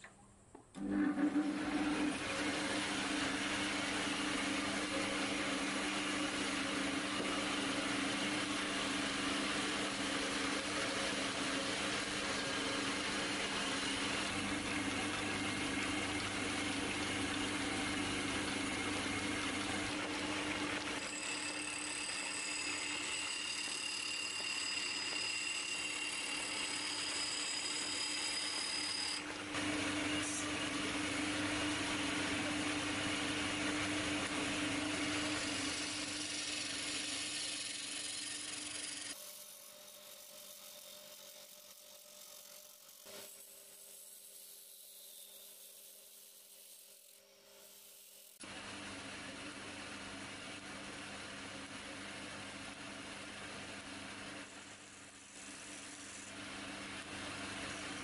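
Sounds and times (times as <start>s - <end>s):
lathe motor humming: 0.8s - 39.2s.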